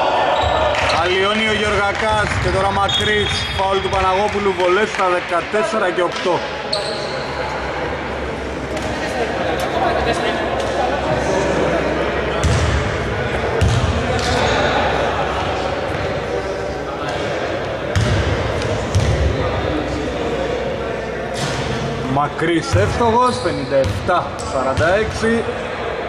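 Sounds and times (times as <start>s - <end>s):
basketball bouncing on court floor: 12.4s - 12.8s, 13.6s - 14.4s, 17.9s - 19.3s.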